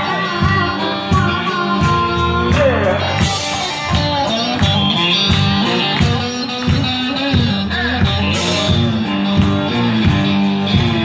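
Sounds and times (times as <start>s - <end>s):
electric guitar: 0.0s - 11.0s
harmonica wailing: 0.0s - 11.0s
steady drum beat: 0.0s - 11.0s.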